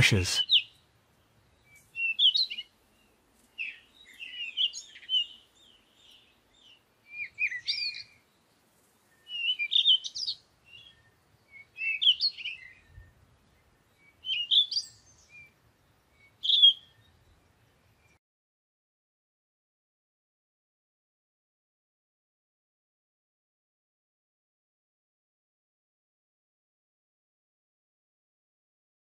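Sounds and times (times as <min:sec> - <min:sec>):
songbird chirps and trills: 0:00.4 - 0:18.2.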